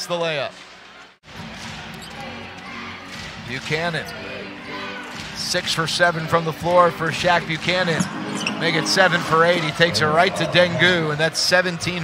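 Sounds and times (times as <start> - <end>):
arena crowd noise: 0.0 - 12.0.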